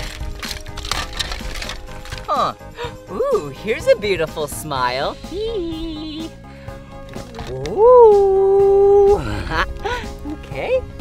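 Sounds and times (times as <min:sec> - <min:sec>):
plastic toy parts clattering: 0:00.0 - 0:02.5
background music: 0:00.0 - 0:11.0.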